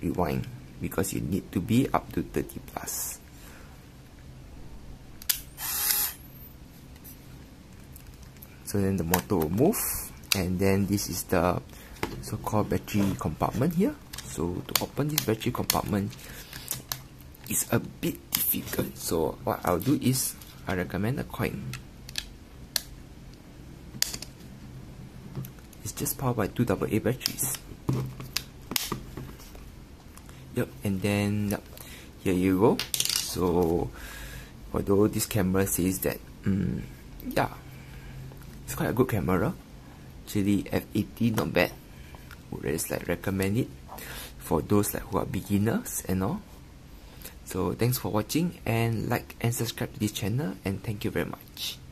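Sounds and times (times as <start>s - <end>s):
camera film motor whir: 5.3s - 6.2s.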